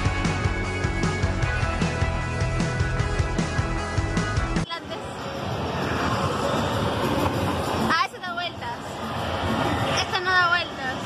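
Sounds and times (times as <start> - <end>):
fairground ride rushing rumble: 4.6 - 11.0.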